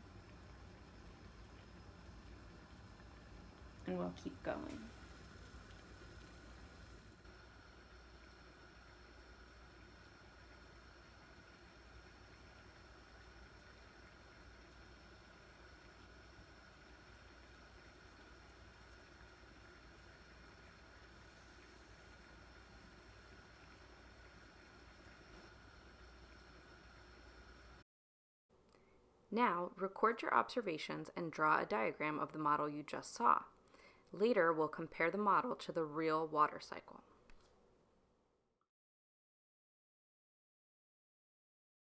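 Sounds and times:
boiling water hiss: 0.0s - 27.8s, 29.7s - 37.0s.

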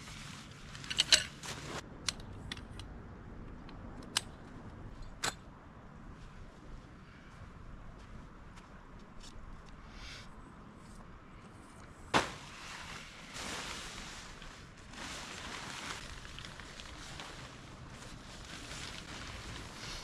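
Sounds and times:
rustles: 0.0s - 1.8s, 9.0s - 20.0s.

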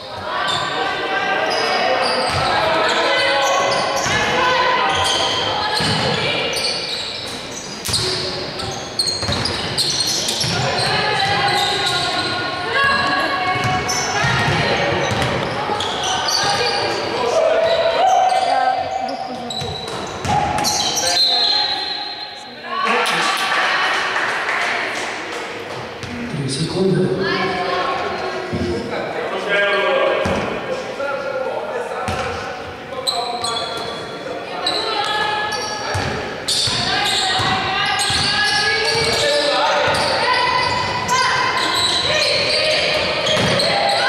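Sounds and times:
voices in a hall: 0.0s - 44.0s
basketball bouncing on hardwood court: 9.2s - 9.6s, 13.5s - 15.6s, 35.9s - 36.8s, 37.4s - 39.2s, 43.2s - 43.7s.

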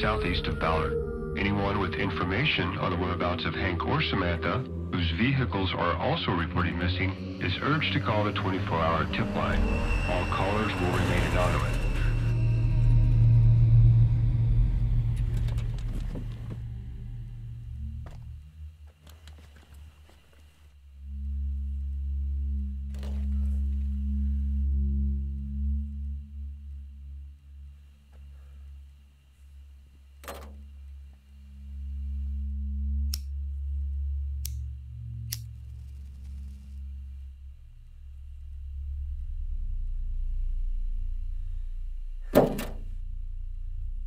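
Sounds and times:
car engine rumbling: 0.0s - 19.9s
music: 0.0s - 20.0s, 20.8s - 44.0s
low drone with held tones: 0.0s - 44.0s.

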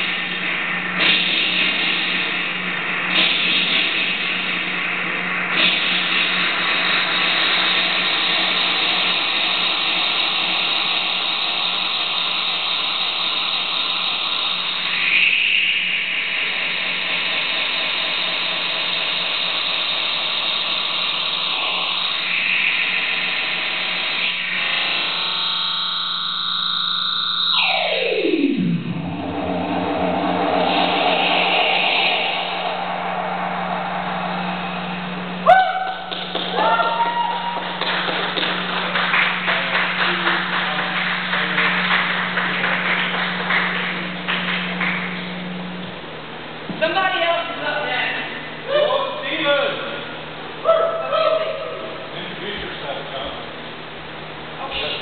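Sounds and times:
distorted electronic noise music: 0.0s - 50.4s
steady low hum: 0.0s - 55.0s
tone sweeping down: 6.4s - 37.8s.

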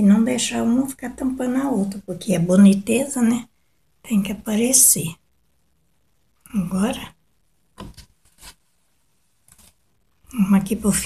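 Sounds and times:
fabric rustling: 7.8s - 10.0s.

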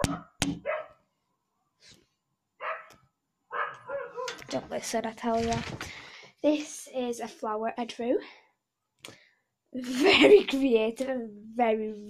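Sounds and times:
dog barking: 0.0s - 1.0s, 2.6s - 4.4s.

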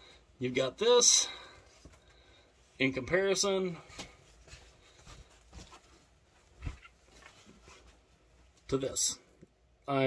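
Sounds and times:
fabric rustling: 3.8s - 8.6s.

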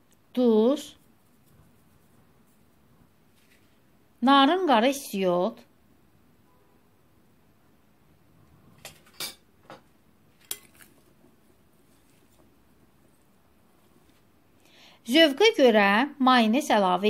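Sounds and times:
soft stirring of salad: 0.8s - 4.0s, 8.5s - 14.6s.

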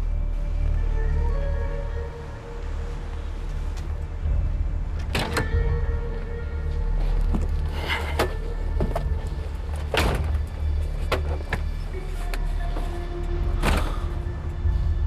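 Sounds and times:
background music with low bass: 0.0s - 15.0s
car doors opening and shutting: 4.9s - 6.2s, 7.1s - 14.4s.

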